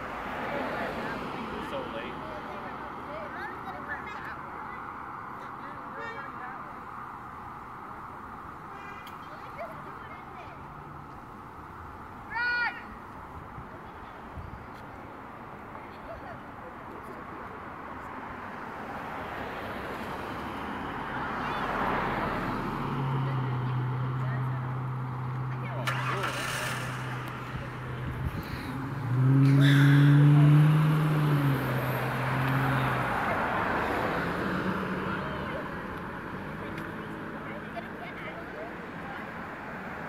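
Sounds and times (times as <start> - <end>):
cars passing: 0.0 - 40.0.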